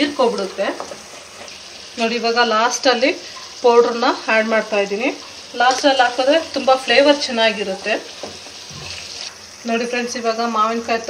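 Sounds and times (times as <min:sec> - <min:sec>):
woman talking: 0:00.0 - 0:00.8, 0:02.0 - 0:08.1, 0:09.6 - 0:11.0
food sizzling in oil: 0:00.0 - 0:11.0.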